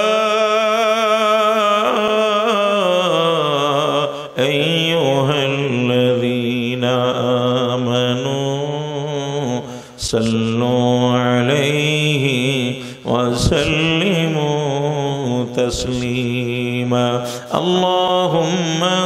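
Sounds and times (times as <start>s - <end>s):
man chanting melodically: 0.0s - 19.0s.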